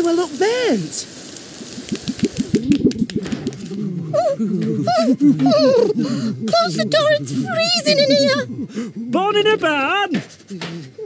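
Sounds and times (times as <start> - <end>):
sausages sizzling on a grill: 0.0 - 11.0
sharp clicks: 1.7 - 3.9.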